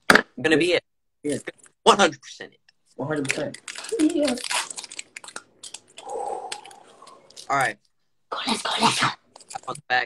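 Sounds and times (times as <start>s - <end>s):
foil pack crinkling: 3.2s - 6.0s.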